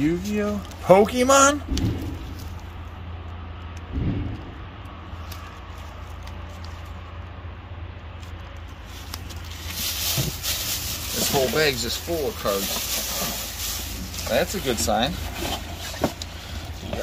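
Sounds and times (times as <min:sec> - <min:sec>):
steady low rumble: 0:00.0 - 0:17.0
plastic bag rustling: 0:08.7 - 0:17.0.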